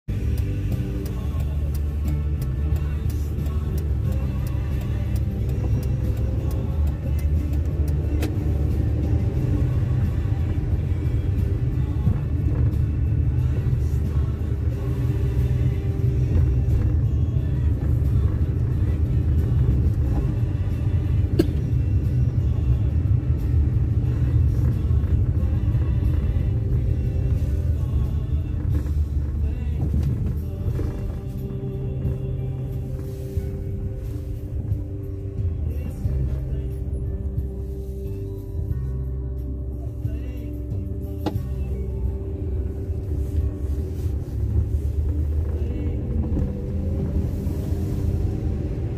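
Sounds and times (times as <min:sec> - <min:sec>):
car road rumble: 0:00.0 - 0:48.9
music playing: 0:00.0 - 0:48.9.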